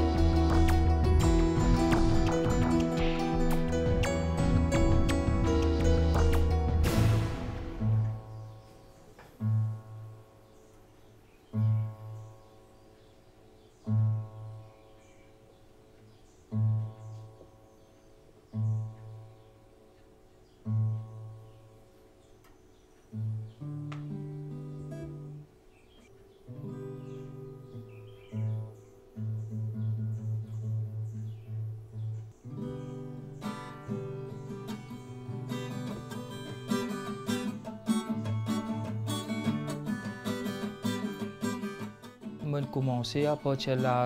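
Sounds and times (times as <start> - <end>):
guitar string plucked repeatedly: 0.0 - 10.5, 18.4 - 25.5, 26.1 - 44.0
classical guitar chord ringing: 0.0 - 10.7.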